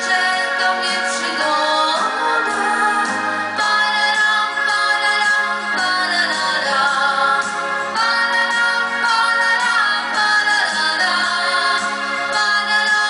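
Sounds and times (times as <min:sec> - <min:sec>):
electronic keyboard accompaniment: 0:00.0 - 0:13.0
woman singing pop song: 0:00.0 - 0:13.0.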